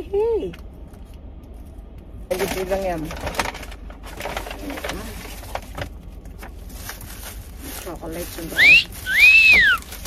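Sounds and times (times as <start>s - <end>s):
paper and plastic rustling: 1.6s - 10.0s.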